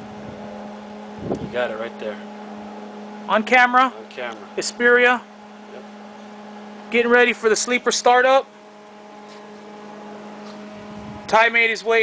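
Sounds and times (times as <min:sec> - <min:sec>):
steady hum with hiss: 0:00.0 - 0:12.0.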